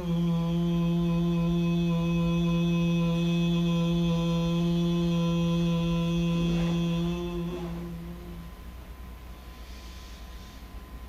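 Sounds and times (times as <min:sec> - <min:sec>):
man's low hummed chant: 0:00.0 - 0:08.8.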